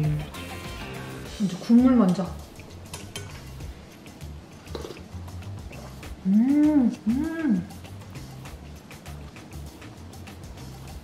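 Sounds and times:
soft background music: 0.0s - 11.0s
sip from a metal spoon: 4.6s - 5.1s.

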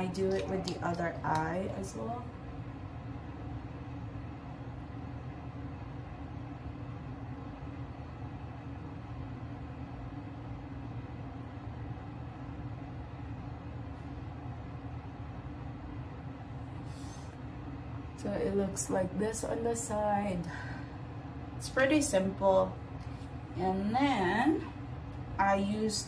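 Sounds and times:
faint hum: 0.0s - 26.0s.

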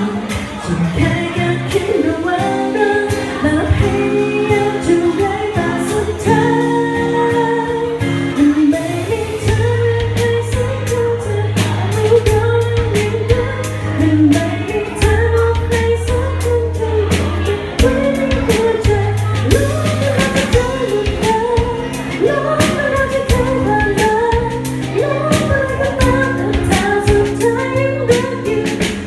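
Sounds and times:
drum kit steady beat: 0.0s - 29.0s
woman singing into microphone: 0.0s - 29.0s
held bass notes: 3.4s - 29.0s.

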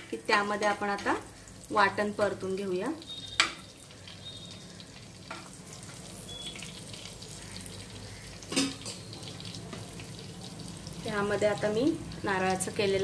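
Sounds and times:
oil sizzling in a pot: 0.0s - 13.0s.

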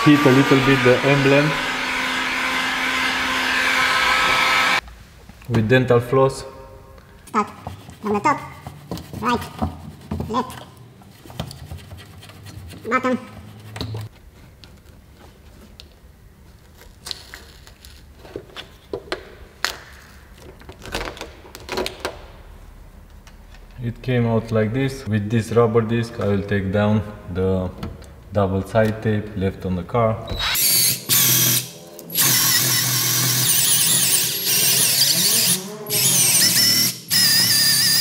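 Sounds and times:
heat gun fan blowing: 0.0s - 4.8s.

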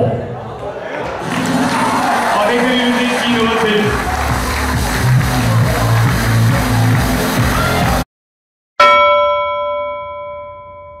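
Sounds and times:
bell-like chime ringing: 8.8s - 11.0s.

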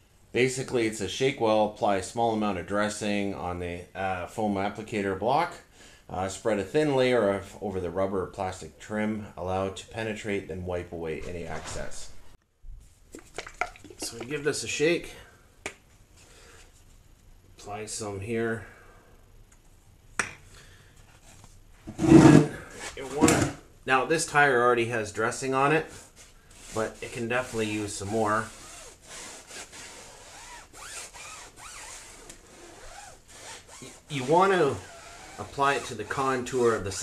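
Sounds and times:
foam block scrubbing a tire: 25.8s - 36.6s.

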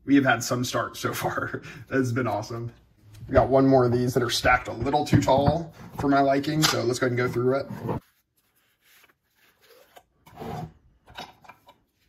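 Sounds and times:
trading cards rubbing and sliding: 7.3s - 10.6s.

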